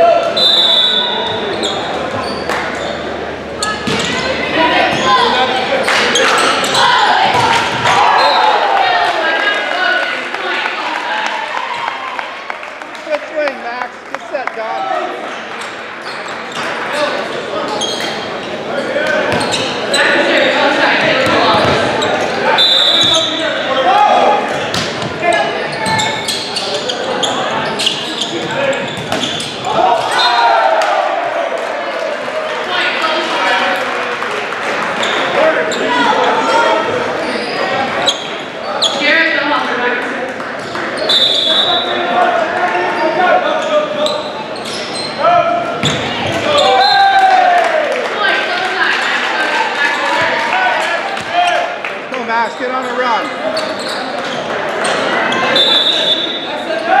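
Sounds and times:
crowd and player voices: 0:00.0 - 0:57.0
referee's whistle: 0:00.2 - 0:01.8, 0:22.5 - 0:23.4, 0:41.0 - 0:42.0, 0:46.6 - 0:47.1, 0:55.4 - 0:56.5
volleyball slaps: 0:07.2 - 0:08.0, 0:21.2 - 0:21.9, 0:24.7 - 0:25.1.

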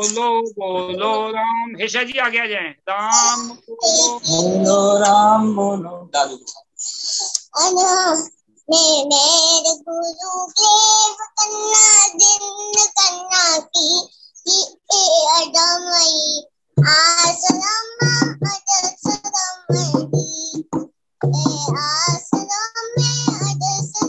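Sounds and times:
girl singing devotional song: 0:03.1 - 0:05.3, 0:06.8 - 0:24.0.

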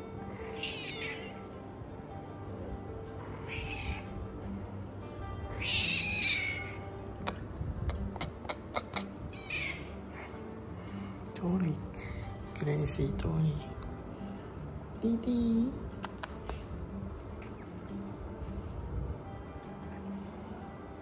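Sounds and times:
cat meowing: 0:00.4 - 0:01.4, 0:03.4 - 0:04.2, 0:05.5 - 0:06.9, 0:09.3 - 0:10.0
sharp clicks: 0:16.0 - 0:16.7.

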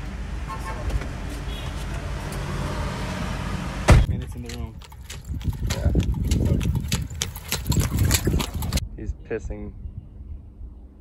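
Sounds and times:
engine and tyres rumbling: 0:00.0 - 0:08.8.

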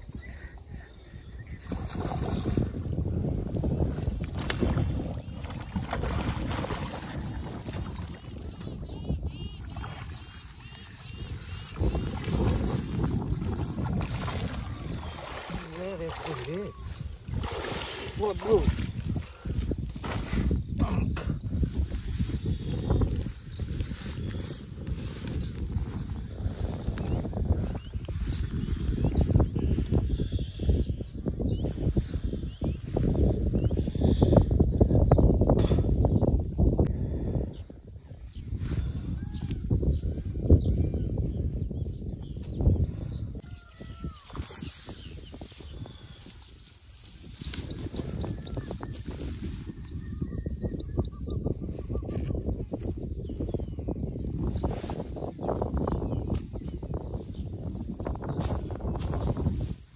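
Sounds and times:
wind rumbling on microphone: 0:00.0 - 0:59.9
birds chirping faintly: 0:20.3 - 0:59.8
microphone handling noise: 0:43.8 - 0:59.9.

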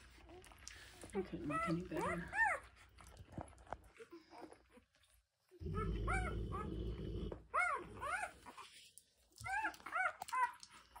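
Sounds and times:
puppies squeaking and whimpering: 0:00.0 - 0:11.0.

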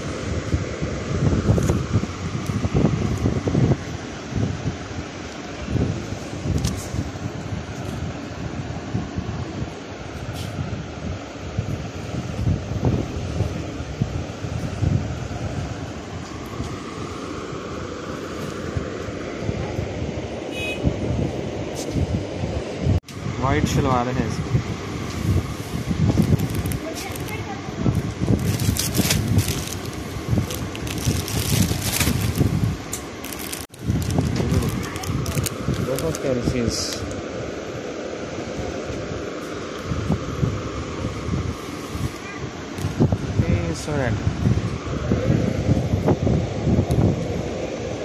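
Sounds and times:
steady rumbling noise: 0:00.0 - 0:48.0.

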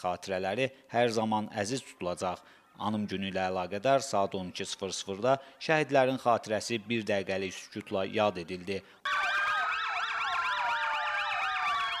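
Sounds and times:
vehicle sirens wailing: 0:09.0 - 0:12.0.

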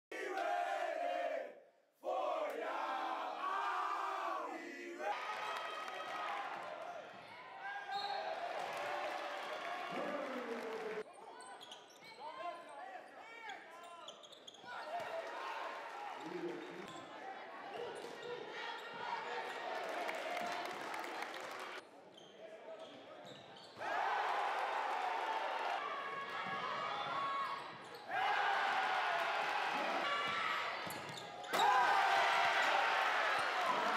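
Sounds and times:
team shouting together: 0:00.1 - 0:05.4
crowd noise: 0:02.0 - 0:11.4
sneakers squeaking on court: 0:30.8 - 0:31.6.

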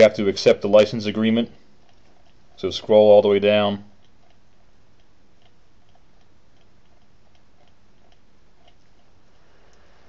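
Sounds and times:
low hiss: 0:02.4 - 0:10.0
mouse scroll wheel ticking: 0:03.9 - 0:09.9.

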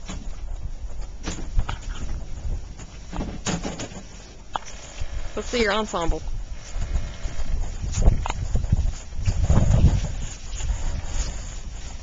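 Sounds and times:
wind rumble on microphone: 0:00.0 - 0:12.0.

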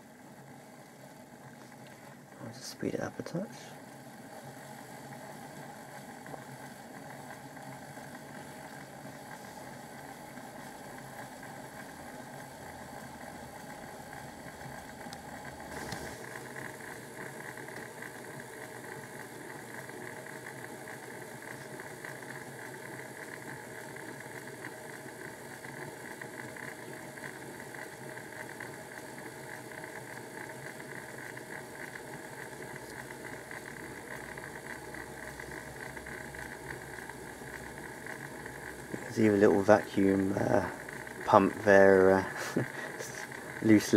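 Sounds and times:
model train motor whirring: 0:13.0 - 0:43.9.

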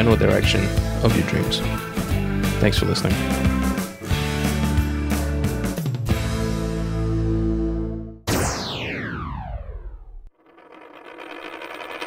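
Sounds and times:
falling electronic sweep: 0:08.3 - 0:10.2
buzzing rattling mechanical noise: 0:10.3 - 0:12.0.

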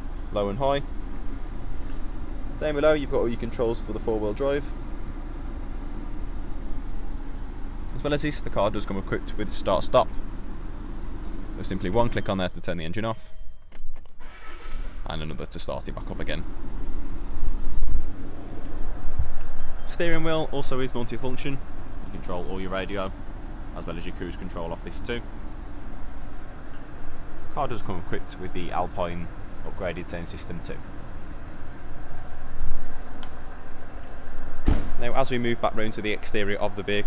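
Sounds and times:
diesel engine starting up: 0:14.1 - 0:37.0
car door shutting: 0:34.6 - 0:35.1.

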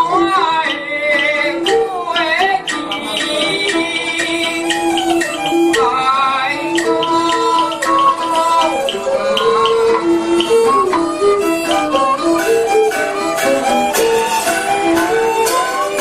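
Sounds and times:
bowed string instrument melody: 0:00.0 - 0:16.0.

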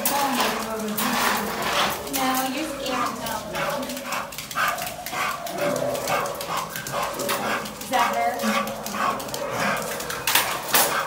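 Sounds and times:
dog whining: 0:02.1 - 0:11.0.

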